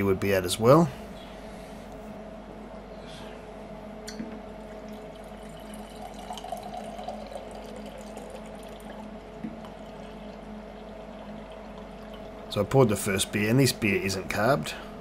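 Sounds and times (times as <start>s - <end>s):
faint steady hum: 0.0s - 15.0s
beer pouring into glass: 4.8s - 12.3s.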